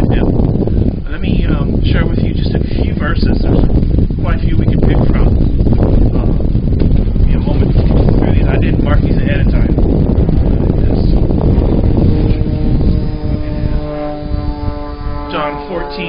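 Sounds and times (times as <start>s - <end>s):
steady multi-tone hum: 0.0s - 16.0s
wind buffeting microphone: 0.0s - 16.0s.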